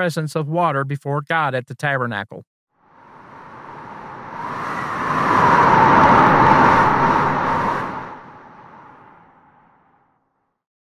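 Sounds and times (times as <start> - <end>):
whoosh sound effect: 3.2 - 9.2.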